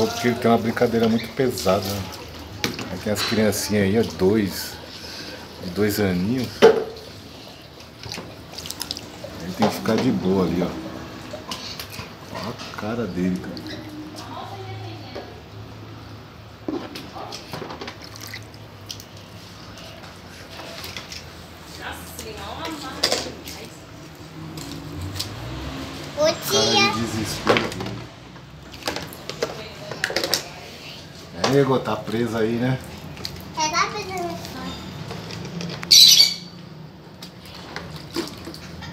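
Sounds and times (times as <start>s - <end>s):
water splashing and dripping: 0.0s - 38.9s
faint children's voices: 25.9s - 27.4s.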